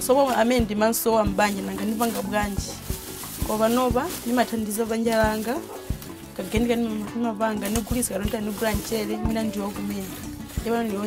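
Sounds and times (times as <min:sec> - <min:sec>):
woman speaking: 0:00.0 - 0:02.8, 0:03.4 - 0:05.7, 0:06.4 - 0:11.0
quiet background music: 0:00.0 - 0:11.0.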